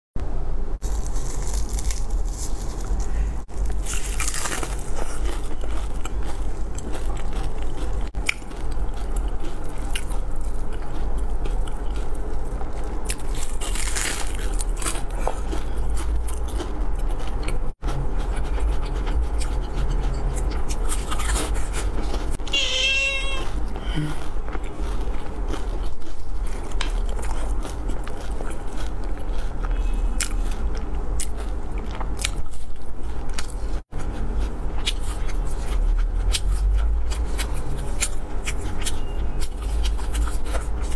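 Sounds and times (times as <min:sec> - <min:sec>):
steady low hum: 0:00.2 - 0:40.9
crunching and chewing crispy food: 0:00.8 - 0:40.9.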